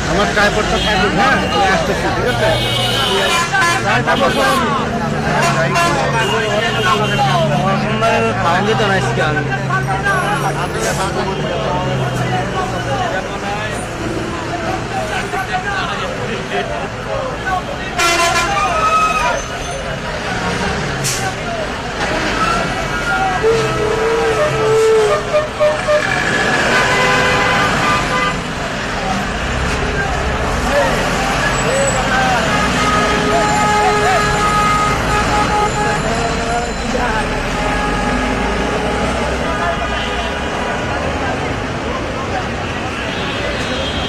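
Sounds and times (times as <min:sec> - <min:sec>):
buses passing in traffic: 0:00.0 - 0:44.0
crowd voices: 0:00.0 - 0:44.0
people talking: 0:00.0 - 0:44.0
vehicle horns: 0:00.4 - 0:08.7, 0:17.9 - 0:19.9, 0:22.3 - 0:28.6, 0:31.0 - 0:40.6, 0:42.5 - 0:44.0.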